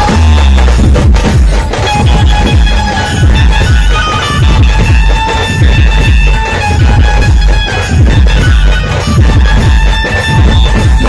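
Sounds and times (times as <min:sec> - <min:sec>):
loud music through speakers: 0:00.0 - 0:11.0.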